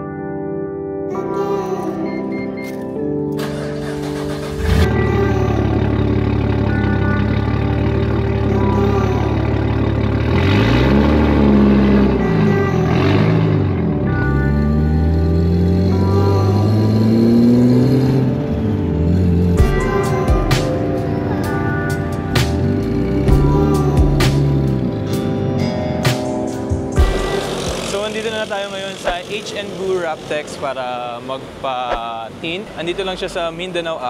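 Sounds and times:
background music: 0.0s - 34.0s
car engine starting and revving: 3.2s - 34.0s.

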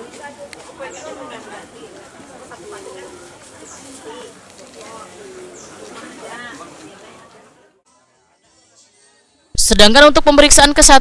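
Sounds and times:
background chatter: 0.0s - 9.6s.

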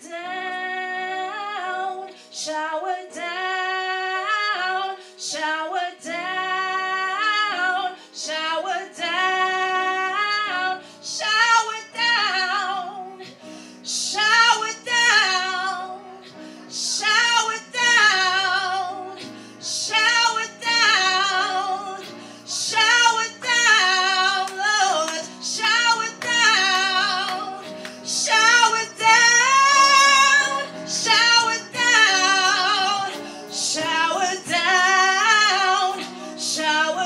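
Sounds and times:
woman singing into microphone: 0.0s - 37.0s.

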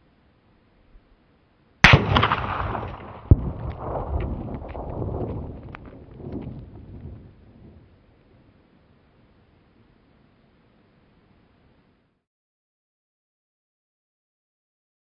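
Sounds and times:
rifle shot with rolling echo: 1.8s - 6.5s.

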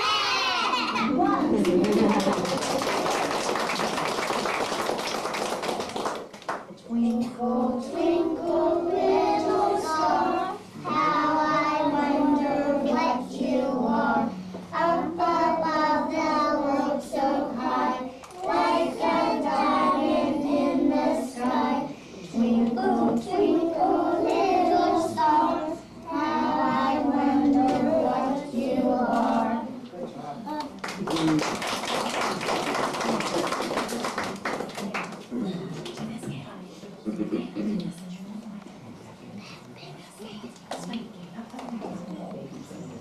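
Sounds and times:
young children singing together: 0.0s - 1.2s, 6.9s - 29.8s.

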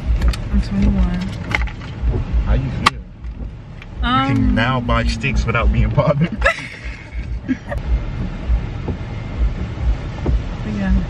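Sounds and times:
car cabin rumble: 0.0s - 11.0s
dull low thumps: 0.0s - 11.0s.

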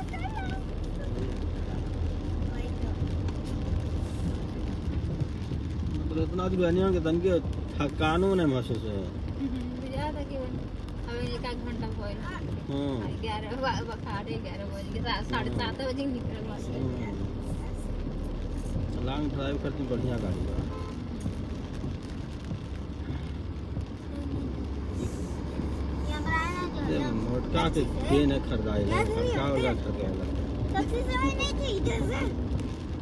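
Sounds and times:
engine and tyre rumble: 0.0s - 33.0s
tyres hissing on wet road: 0.0s - 33.0s.

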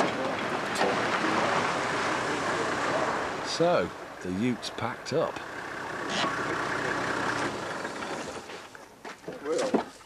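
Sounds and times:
car engine: 0.0s - 9.0s
tyres on dirt road: 0.0s - 10.0s.

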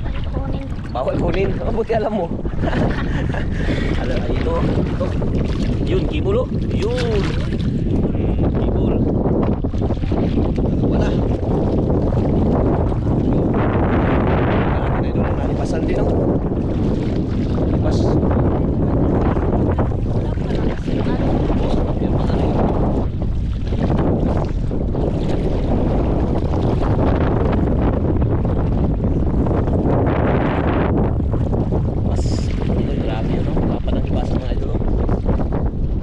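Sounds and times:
water sloshing as people wade: 0.0s - 36.0s
wind buffeting microphone: 0.0s - 36.0s.

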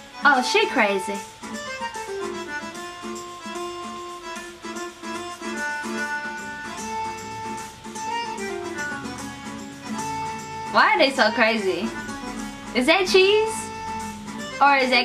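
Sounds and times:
instrumental background music: 0.0s - 15.0s.

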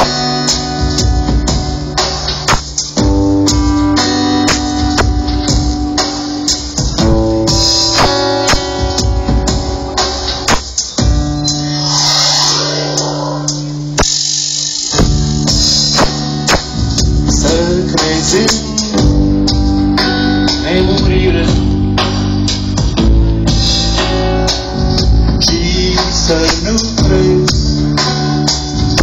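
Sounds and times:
folk-electronica music: 0.0s - 26.0s.

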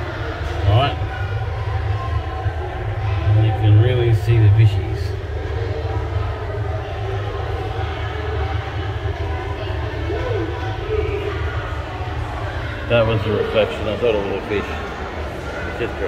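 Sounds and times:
indistinct voices: 0.0s - 16.0s
low machinery hum: 0.0s - 16.0s.

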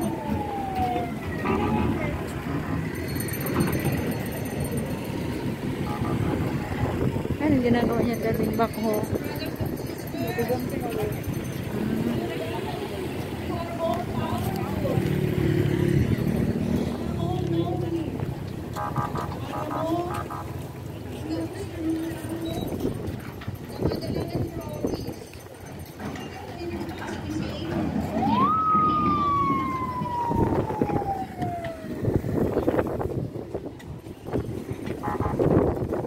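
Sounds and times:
siren wailing: 0.0s - 3.0s, 5.8s - 7.1s, 18.7s - 20.6s, 28.1s - 32.8s
people's voices: 0.0s - 36.0s.

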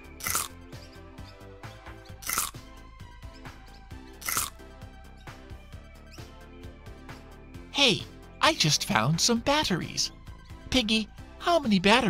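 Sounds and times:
cartoon background music: 0.0s - 12.0s
crunching sound effects: 0.2s - 0.6s, 2.2s - 2.6s, 4.2s - 4.6s.

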